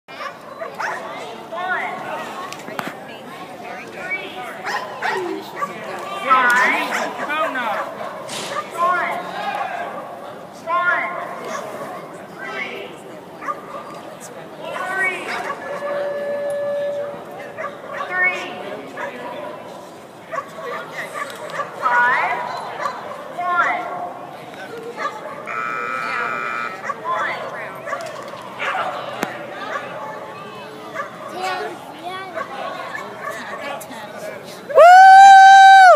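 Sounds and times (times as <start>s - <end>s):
people's voices: 0.1s - 35.9s
dog barking: 0.2s - 1.0s, 4.6s - 5.8s, 17.4s - 18.2s, 20.3s - 21.7s, 26.8s - 27.3s, 31.0s - 31.4s
steady held tone: 15.7s - 17.4s.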